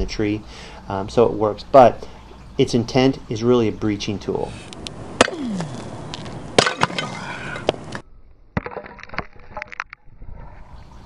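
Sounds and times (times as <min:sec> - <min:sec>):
concrete block cracking: 0:05.2 - 0:08.0, 0:08.6 - 0:10.0
steel shovel slamming into concrete block: 0:06.6 - 0:07.2.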